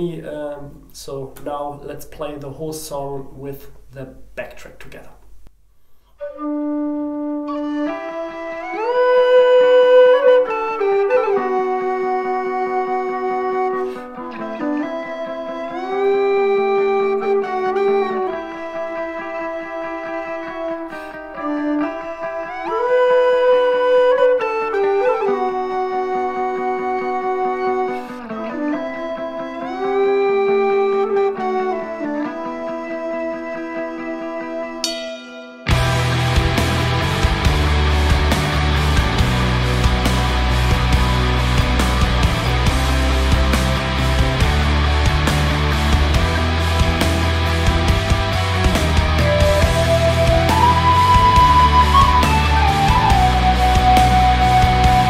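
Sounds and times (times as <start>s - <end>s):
tin whistle folk melody: 6.0s - 45.1s, 47.4s - 55.0s
backing track with steady beat: 34.8s - 55.0s.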